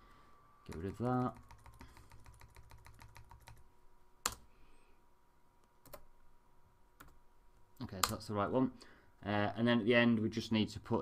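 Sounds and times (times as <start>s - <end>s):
keyboard key tapped rapidly: 0.7s - 3.6s
sharp keyboard clicks: 0.7s - 3.6s, 7.9s - 8.2s.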